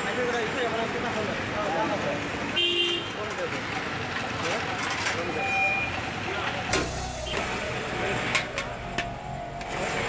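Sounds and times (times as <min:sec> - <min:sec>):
vehicle horn toots: 0:02.6 - 0:03.2.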